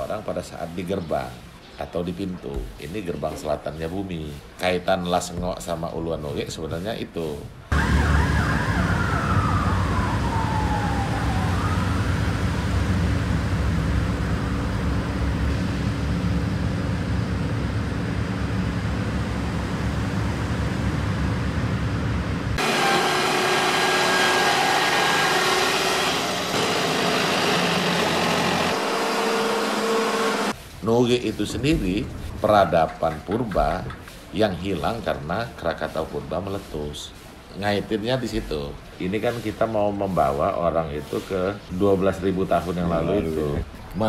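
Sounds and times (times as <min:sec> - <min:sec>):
siren wail: 0:07.7 - 0:14.8, 0:22.6 - 0:29.7.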